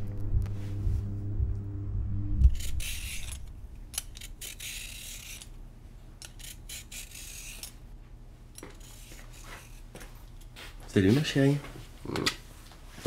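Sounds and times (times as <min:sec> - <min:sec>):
low steady drone: 0:00.0 - 0:04.0
scraping rustling noises: 0:08.7 - 0:13.0.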